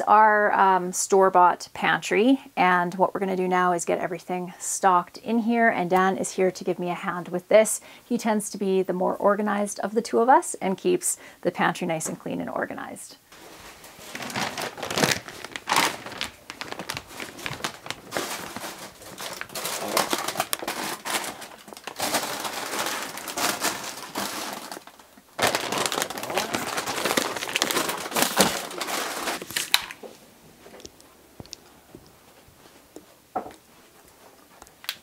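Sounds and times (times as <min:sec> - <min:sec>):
plastic packaging crinkling: 0:13.4 - 0:31.7.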